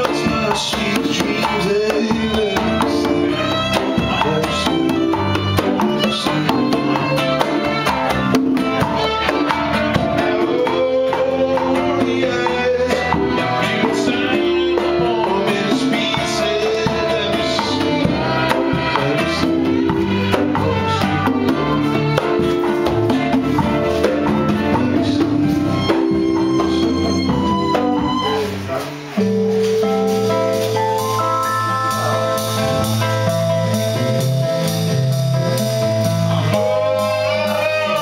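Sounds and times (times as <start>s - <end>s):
acoustic guitar: 0.0s - 38.0s
keyboard: 0.0s - 38.0s
violin: 0.0s - 38.0s
hand percussion with cymbals: 17.6s - 38.0s.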